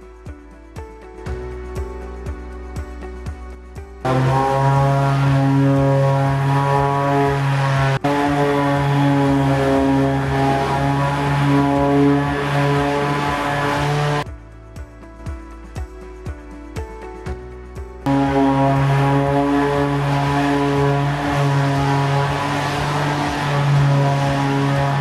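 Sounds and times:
electric palm sander buzzing: 0:04.1 - 0:14.2, 0:18.1 - 0:25.0.

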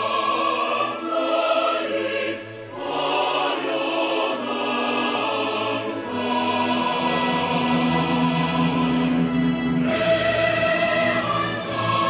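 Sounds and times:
choir singing an anthem: 0:00.0 - 0:12.0.

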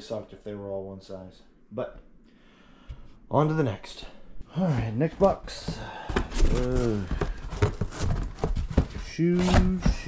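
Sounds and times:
shoes knocking in cardboard box: 0:05.4 - 0:10.0.

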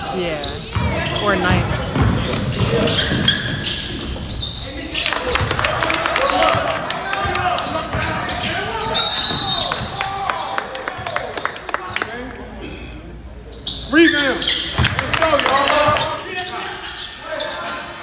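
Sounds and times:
basketball bouncing on hardwood floor: 0:01.8 - 0:03.4.

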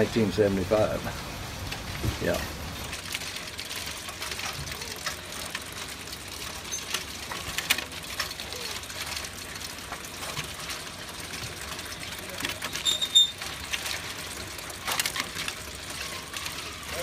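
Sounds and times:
mesh conveyor rattling: 0:00.0 - 0:17.0.

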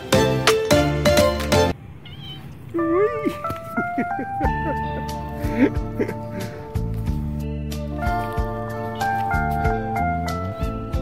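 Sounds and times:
background music held notes: 0:00.0 - 0:01.8, 0:02.8 - 0:11.0
cat meowing: 0:01.8 - 0:03.5.

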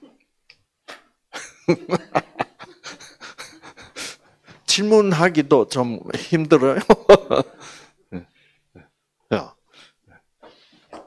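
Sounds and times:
man chuckling softly: 0:01.4 - 0:04.0.

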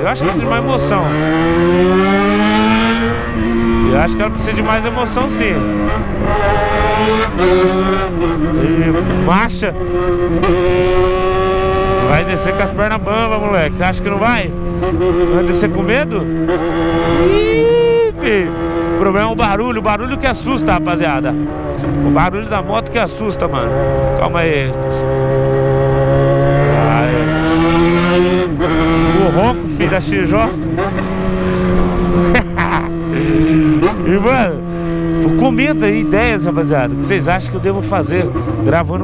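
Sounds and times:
motorcycle engine accelerating: 0:00.0 - 0:39.0.

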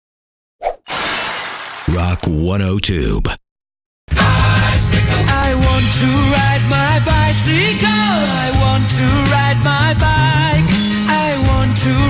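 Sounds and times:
glass breaking crash: 0:00.9 - 0:01.9.

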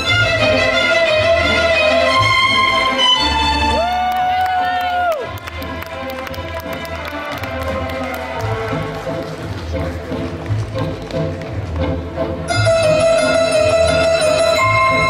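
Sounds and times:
waltz music over sound system: 0:00.0 - 0:15.0.

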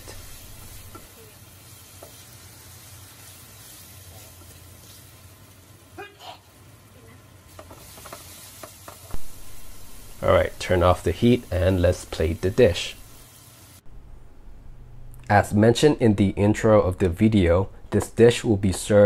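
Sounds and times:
food sizzling in a frying pan: 0:00.0 - 0:13.8.

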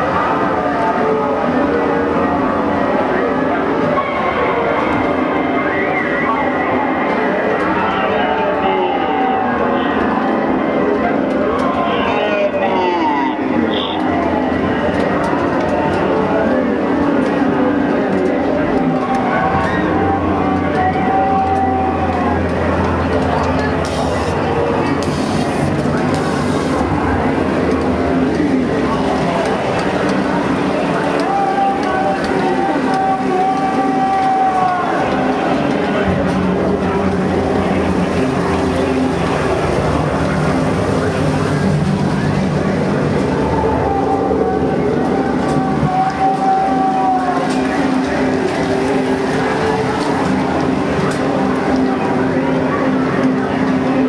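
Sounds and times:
voices singing over music: 0:00.0 - 0:54.0.

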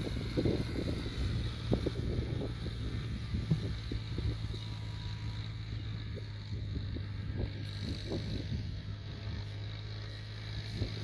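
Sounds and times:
tractor engine running under load: 0:00.0 - 0:11.0.

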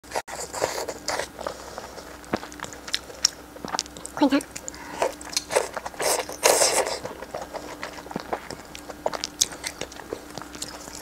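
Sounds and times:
wet chewing and mouth smacks: 0:00.4 - 0:11.0.

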